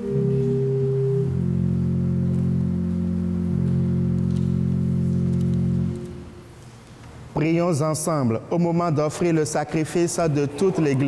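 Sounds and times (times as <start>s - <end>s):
pipe organ chord: 0.0s - 6.4s.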